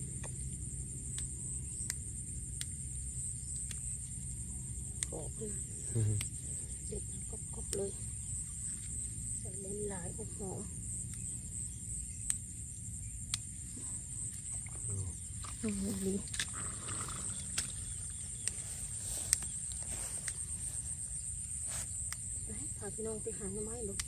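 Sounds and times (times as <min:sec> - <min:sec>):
insect trill: 0:00.0 - 0:24.0
herb stems snapping: 0:15.4 - 0:20.8.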